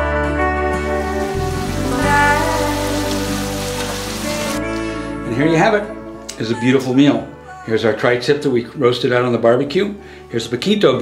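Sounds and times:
background music: 0.0 - 11.0
beans sizzling in a skillet: 0.8 - 4.6.

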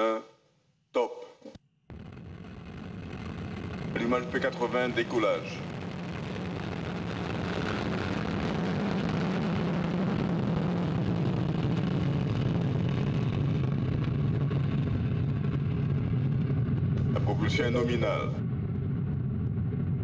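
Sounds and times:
rocket motor rumble: 1.9 - 20.0.

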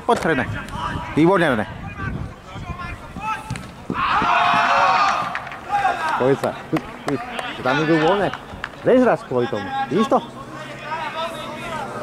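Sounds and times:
voices shouting: 0.6 - 12.0.

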